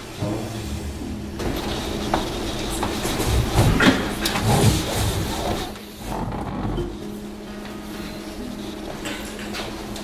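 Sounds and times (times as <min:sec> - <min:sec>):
desk chair rolling and knocking: 0:01.4 - 0:07.1.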